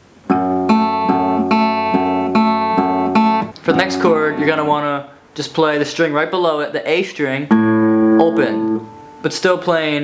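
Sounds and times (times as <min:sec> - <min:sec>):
acoustic guitar picking: 0:00.2 - 0:05.1, 0:07.5 - 0:09.4.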